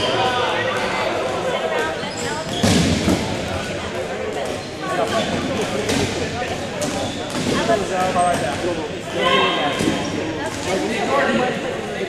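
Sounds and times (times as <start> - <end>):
echoing voices: 0.0 - 12.0.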